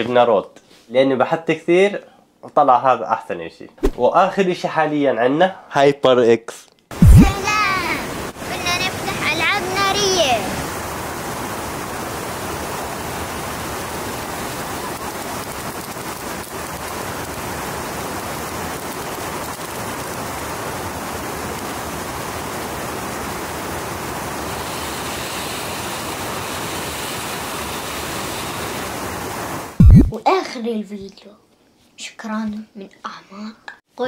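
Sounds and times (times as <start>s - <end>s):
water rushing over weir: 7.0s - 10.8s
fountain firework hissing: 7.0s - 11.0s, 11.8s - 29.8s.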